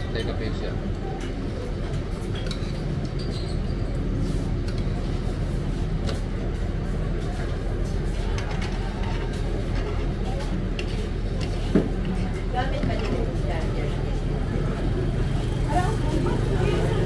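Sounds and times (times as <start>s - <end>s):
people talking: 7.0s - 17.0s.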